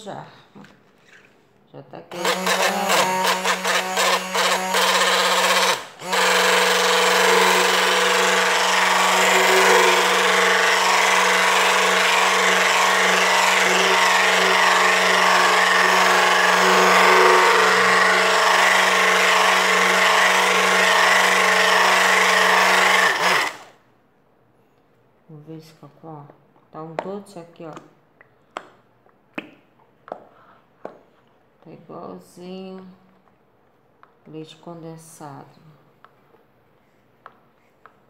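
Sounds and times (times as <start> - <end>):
electric drill mixing batter: 2.1 - 23.8.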